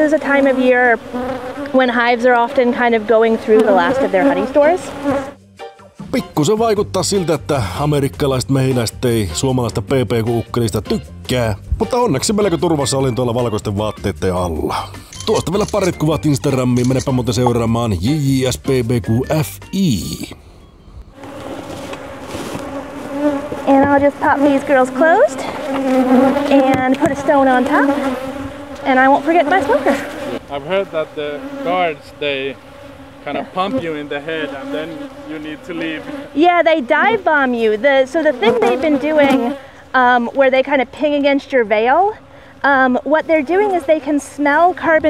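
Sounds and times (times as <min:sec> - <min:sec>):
honeybees buzzing: 0:00.0 - 0:05.5, 0:11.9 - 0:18.4, 0:19.2 - 0:45.0.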